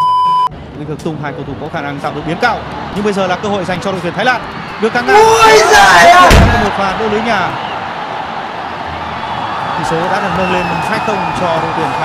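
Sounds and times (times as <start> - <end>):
stadium crowd noise: 0.6 - 12.0.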